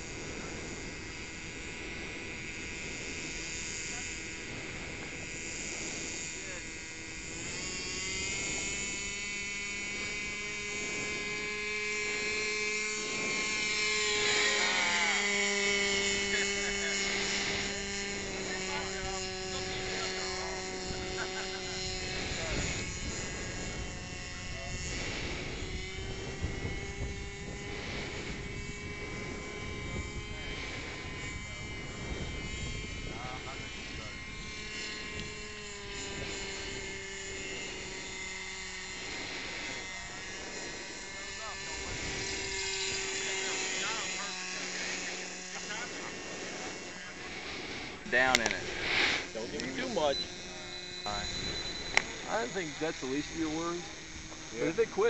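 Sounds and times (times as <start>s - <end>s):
small model engine buzzing: 0.0s - 55.0s.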